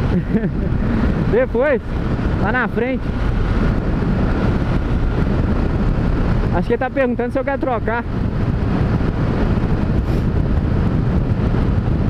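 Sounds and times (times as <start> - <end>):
motorcycle engine drone: 0.0 - 12.0
wind rush: 0.0 - 12.0.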